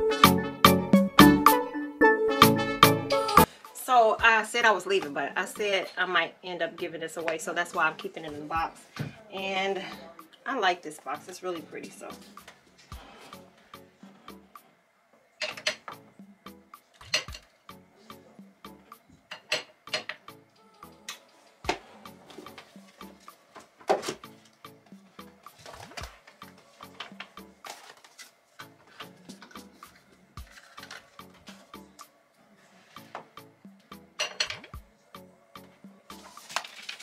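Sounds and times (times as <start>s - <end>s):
background music: 0.0s - 37.0s
glass bottles clinking: 19.3s - 20.2s, 34.2s - 34.7s.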